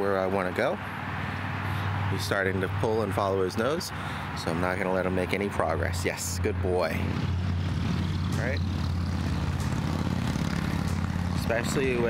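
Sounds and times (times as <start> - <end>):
low engine drone: 6.5 - 12.0.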